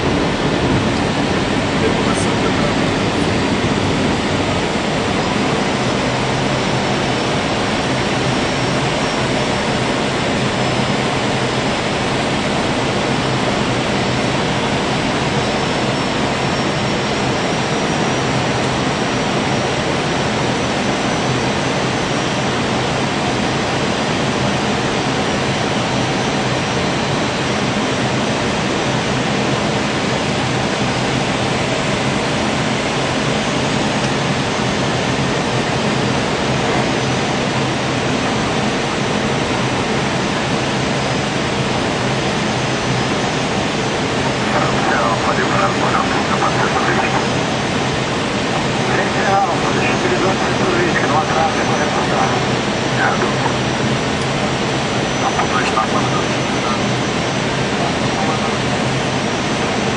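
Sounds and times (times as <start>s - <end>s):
cockpit air rushing and jet engines: 0.0s - 59.9s
short radio voice: 0.8s - 3.9s, 44.4s - 47.5s, 48.8s - 53.8s, 55.0s - 56.9s, 57.8s - 58.6s.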